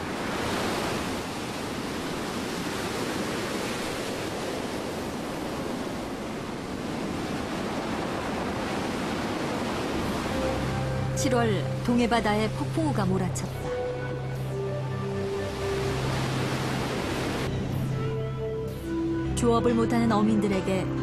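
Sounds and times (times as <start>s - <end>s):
wind blowing: 0.0s - 19.1s
waves surging: 0.0s - 19.2s.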